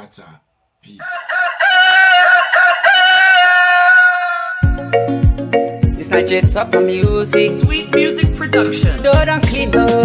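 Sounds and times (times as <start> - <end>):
rooster crowing: 1.0 - 5.1.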